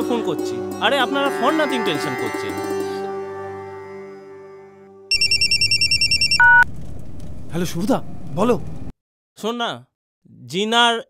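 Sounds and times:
warbling phone ringtone: 5.1s - 6.6s
low beep: 5.1s - 6.7s.

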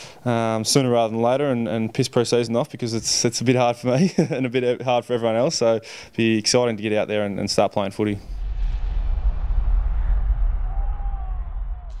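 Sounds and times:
deep steady rumble: 8.2s - 12.0s.

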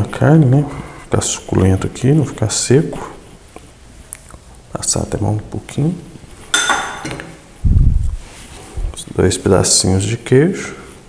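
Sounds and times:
metal spoon clinking on dish: 6.5s - 7.2s.

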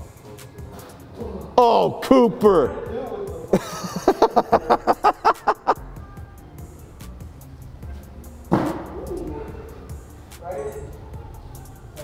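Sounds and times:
background music: 0.0s - 12.0s
man laughing: 3.5s - 5.9s.

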